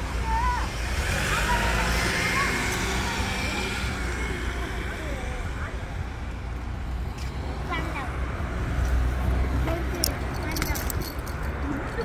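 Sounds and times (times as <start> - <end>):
faint voices: 0.0 - 12.0
road traffic rumbling: 0.0 - 12.0.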